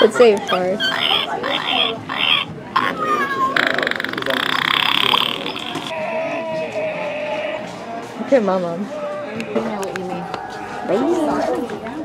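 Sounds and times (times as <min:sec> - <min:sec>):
voices: 0:00.0 - 0:12.0
recorded fart sound from speaker: 0:01.8 - 0:05.9.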